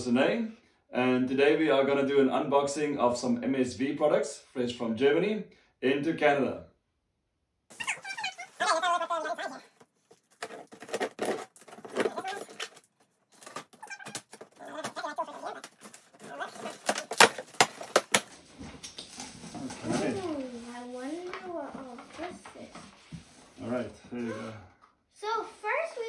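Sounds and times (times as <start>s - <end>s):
packing tape ripping: 10.3s - 20.0s.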